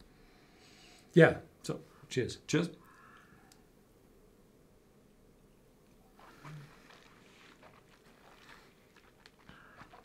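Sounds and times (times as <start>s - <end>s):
sipping and swallowing: 6.2s - 10.0s.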